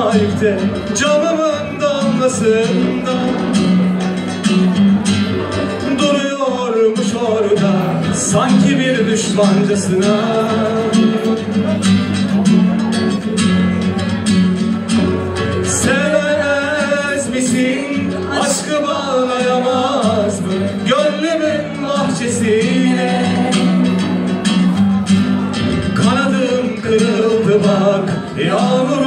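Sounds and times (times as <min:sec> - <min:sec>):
person singing slow pop song: 0:00.0 - 0:14.1, 0:14.9 - 0:29.0
acoustic guitar strumming: 0:00.0 - 0:29.0.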